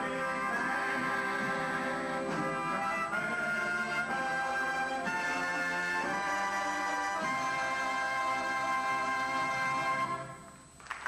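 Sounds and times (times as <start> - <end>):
concert band playing chords: 0.0 - 10.8.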